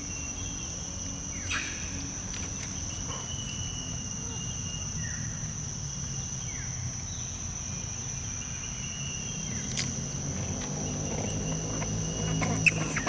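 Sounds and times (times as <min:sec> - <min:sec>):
high-pitched insect drone: 0:00.0 - 0:13.0.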